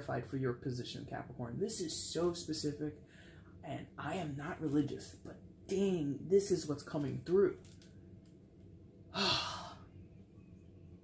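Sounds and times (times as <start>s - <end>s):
person sighing: 9.1s - 10.0s.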